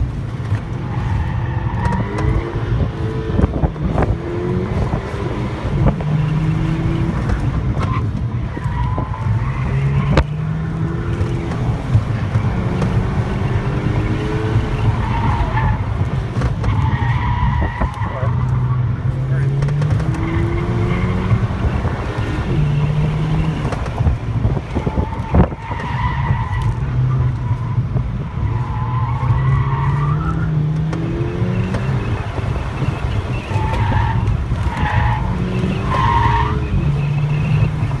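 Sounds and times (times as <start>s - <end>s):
car engine revving: 0.0s - 38.0s.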